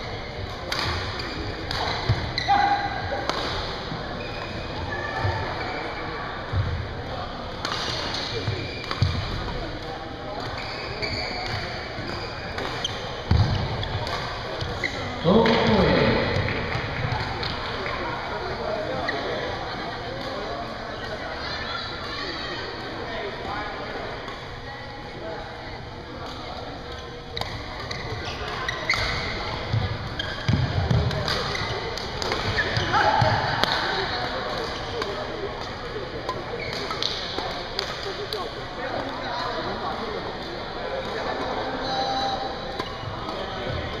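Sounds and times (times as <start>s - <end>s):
voices in a hall: 0.0s - 44.0s
rackets hitting shuttlecock: 0.5s - 2.3s, 3.1s - 3.8s, 7.6s - 10.6s, 11.4s - 18.0s, 27.4s - 39.2s.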